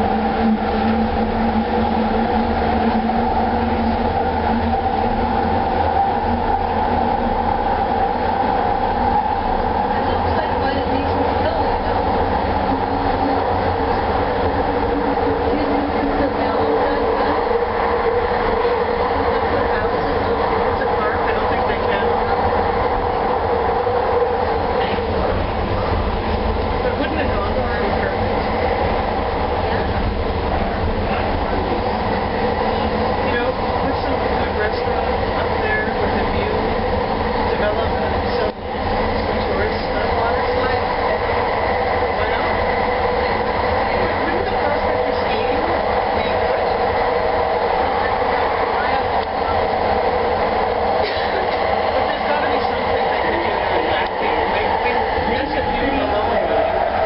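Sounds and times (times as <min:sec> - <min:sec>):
wheel-on-rail noise: 0:00.0 - 0:57.0.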